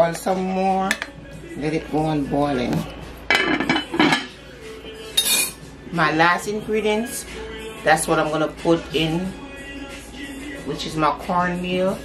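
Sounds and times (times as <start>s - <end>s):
metal utensils clanking on pot: 3.3s - 4.3s.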